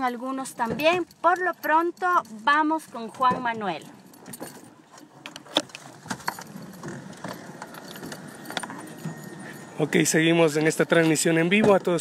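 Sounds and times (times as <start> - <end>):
handling clicks and rattles: 0.0 - 12.0.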